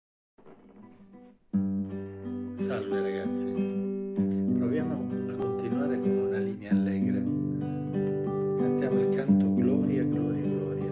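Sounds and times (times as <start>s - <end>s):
classical guitar notes and chord: 0.4s - 10.9s.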